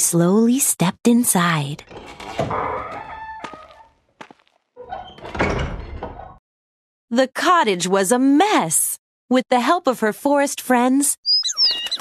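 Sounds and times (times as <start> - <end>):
wooden door opening: 1.8 - 3.9, 4.8 - 6.4.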